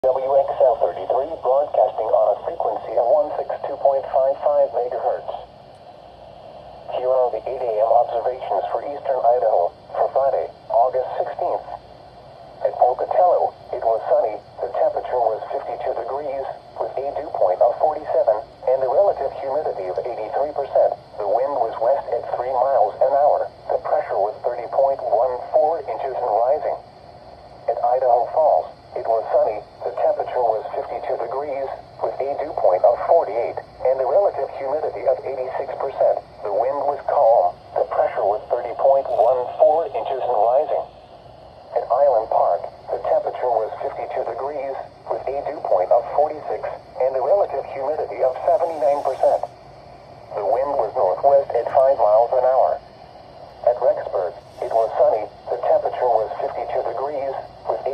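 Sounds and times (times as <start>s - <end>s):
synthesized voice on small speaker: 0.0s - 5.5s, 6.9s - 11.8s, 12.6s - 26.8s, 27.7s - 40.9s, 41.7s - 49.5s, 50.3s - 52.8s, 53.6s - 57.9s.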